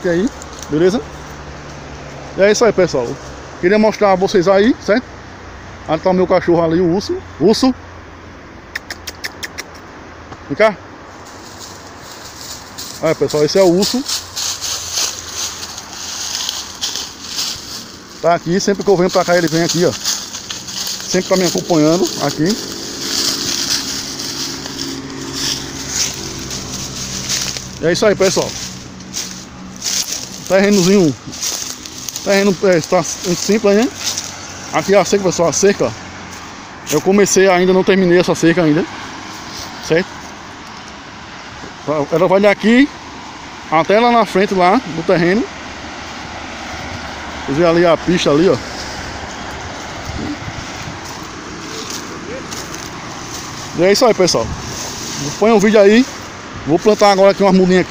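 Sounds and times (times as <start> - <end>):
highway traffic: 0.0 - 57.9
vehicle engine running: 0.0 - 57.9.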